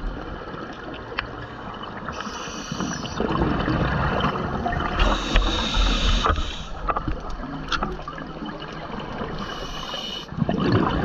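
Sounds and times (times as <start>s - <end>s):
underwater regulator breathing: 2.1s - 3.2s, 5.0s - 6.9s, 9.4s - 10.3s.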